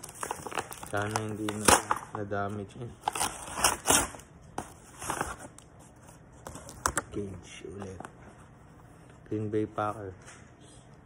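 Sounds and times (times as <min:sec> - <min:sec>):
paper envelope rustling and crinkling: 0:00.0 - 0:02.1, 0:04.6 - 0:08.8.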